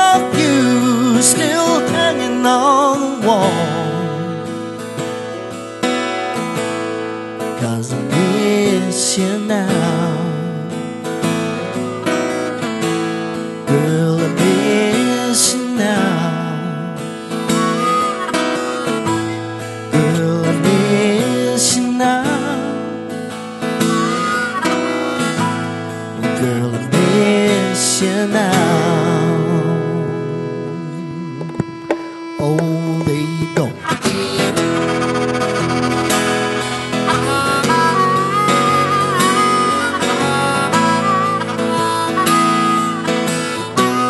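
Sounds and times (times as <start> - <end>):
harmonica playing lead lines: 0.0 - 8.4, 9.0 - 44.0
strummed acoustic guitar: 0.0 - 44.0
sharp guitar strums: 23.2 - 44.0
guitar chord ringing: 28.7 - 44.0.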